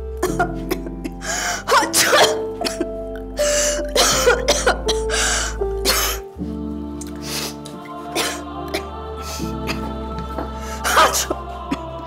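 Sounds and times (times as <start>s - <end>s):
background music: 0.0s - 12.0s
woman coughing and sneezing: 1.7s - 2.9s, 4.0s - 5.0s.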